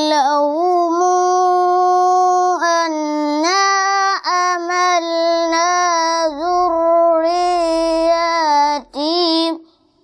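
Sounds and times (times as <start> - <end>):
boy chanting melodically: 0.0 - 10.0.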